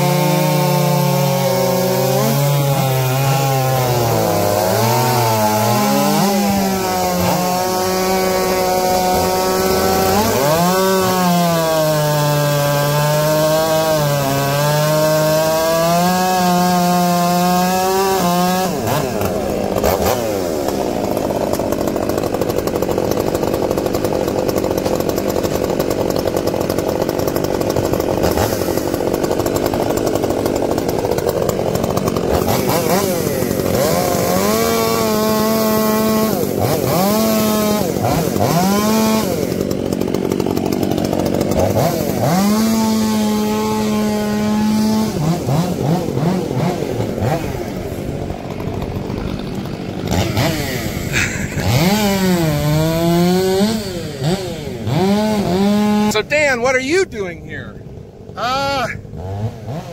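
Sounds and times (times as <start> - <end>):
chainsaw engine revving: 0.0 - 59.9
chainsaws cutting log: 0.0 - 59.9.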